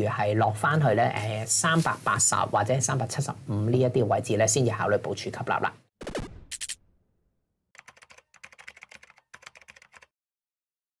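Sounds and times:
computer keyboard typing: 7.8s - 10.1s.

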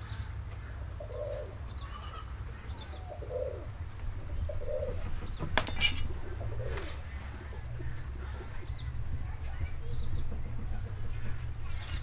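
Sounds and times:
dove cooing: 0.9s - 5.5s, 6.1s - 9.0s
steel rule clattering: 5.6s - 6.1s.

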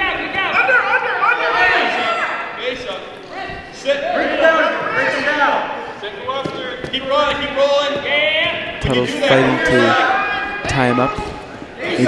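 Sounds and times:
people calling out and talking: 0.0s - 12.0s.

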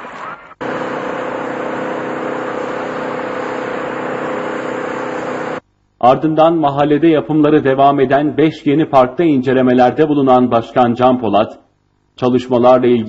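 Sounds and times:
engine running steadily: 0.6s - 5.6s.

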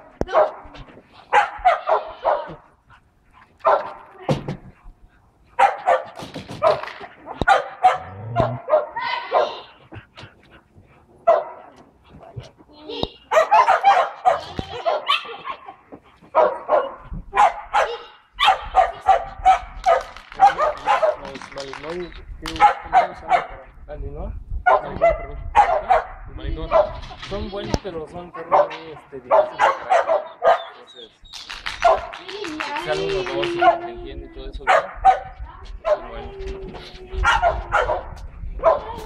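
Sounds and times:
dog barking: 0.3s - 2.6s, 3.6s - 4.1s, 5.6s - 9.7s, 11.2s - 11.7s, 13.3s - 15.4s, 16.3s - 21.3s, 22.6s - 23.6s, 24.6s - 27.0s, 28.4s - 30.8s, 31.8s - 32.1s, 34.7s - 36.2s, 37.2s - 38.9s.

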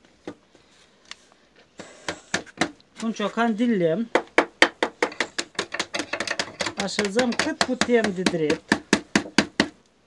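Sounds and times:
wooden mallet tapping reeds: 4.2s - 9.8s.

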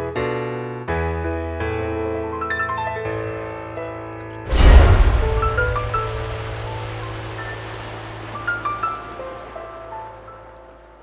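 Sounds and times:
sea surf washing in: 4.5s - 11.0s.

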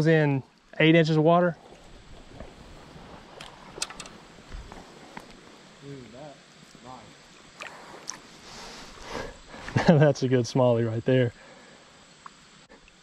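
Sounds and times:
river water lapping and sloshing: 1.6s - 5.7s.

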